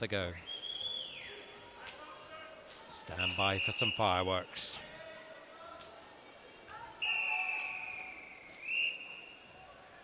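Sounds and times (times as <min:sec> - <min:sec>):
referee's whistle long blast: 0:07.0 - 0:09.4.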